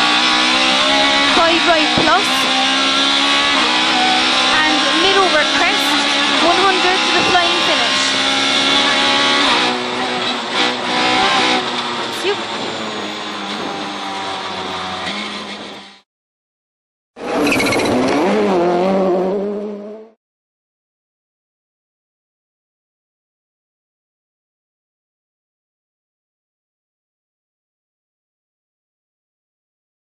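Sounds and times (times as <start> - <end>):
rally car engine running: 0.0 - 16.0, 17.2 - 20.2.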